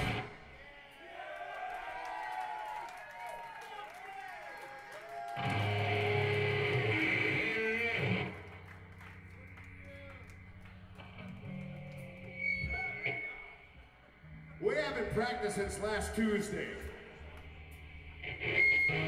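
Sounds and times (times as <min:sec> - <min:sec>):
bass notes: 0:00.0 - 0:00.3
electric guitar chord ringing: 0:05.4 - 0:08.5
stray guitar notes: 0:05.4 - 0:09.3, 0:10.4 - 0:19.0.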